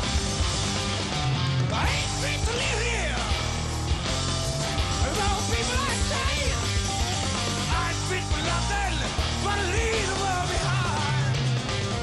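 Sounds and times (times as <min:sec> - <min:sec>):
bass guitar: 0:00.0 - 0:12.0
distorted electric guitars: 0:00.0 - 0:12.0
drums: 0:00.0 - 0:12.0
man singing: 0:01.7 - 0:03.4, 0:05.0 - 0:06.7, 0:07.6 - 0:11.4.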